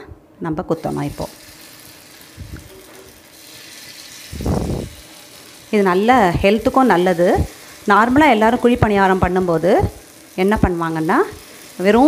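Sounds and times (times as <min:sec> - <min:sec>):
batter sizzling in oil: 0:00.8 - 0:12.0.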